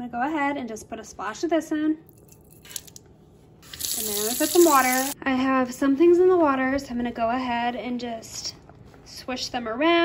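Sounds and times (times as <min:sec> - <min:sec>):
tap water running into bowl: 0:03.6 - 0:05.2.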